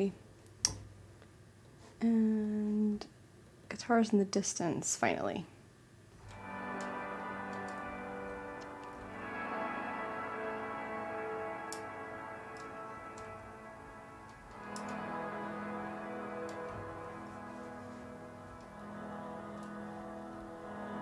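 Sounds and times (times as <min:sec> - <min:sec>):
ambient electric guitar chords: 0:06.2 - 0:21.0.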